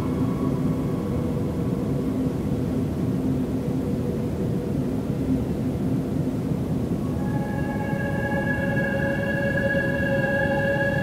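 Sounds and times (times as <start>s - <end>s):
dark ambient noise drone: 0.0s - 11.0s.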